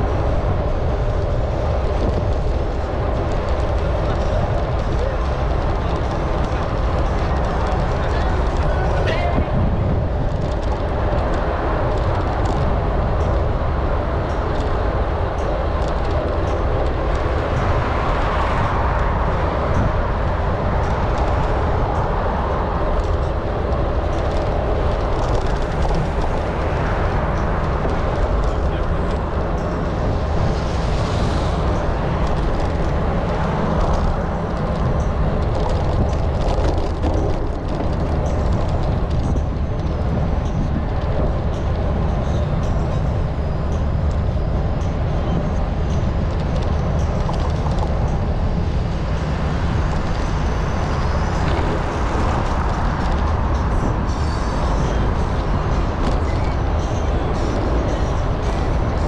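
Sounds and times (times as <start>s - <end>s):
wind and bicycle riding noise: 0.0s - 59.0s.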